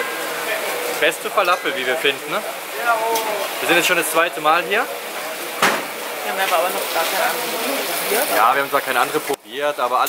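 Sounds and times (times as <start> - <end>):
people talking: 0.0 - 10.0
street noise hiss: 0.0 - 10.0.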